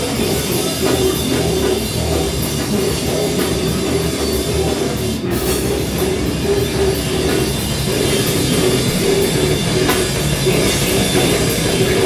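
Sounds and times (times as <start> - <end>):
drum kit: 0.0 - 12.0
electric guitar: 0.0 - 12.0
heavy metal band playing: 0.0 - 12.0.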